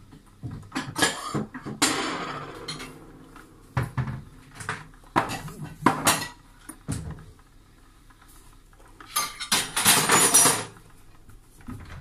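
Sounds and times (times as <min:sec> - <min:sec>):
kitchen objects clattering: 0:00.2 - 0:07.3, 0:08.9 - 0:11.0.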